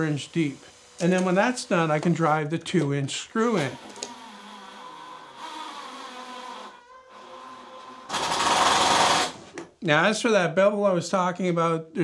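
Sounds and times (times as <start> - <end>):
cordless drill drilling into wood: 3.5 - 9.4.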